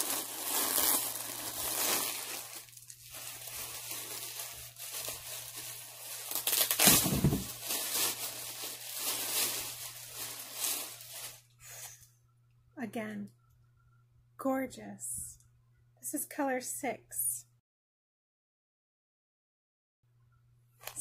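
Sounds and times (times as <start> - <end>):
bag crinkling and rustling: 0.0 - 11.5.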